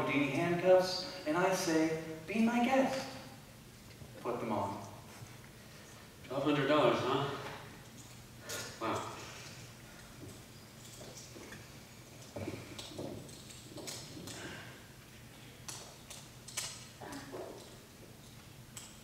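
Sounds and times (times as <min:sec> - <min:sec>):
low steady hum: 0:00.0 - 0:19.0
footsteps: 0:09.4 - 0:14.8.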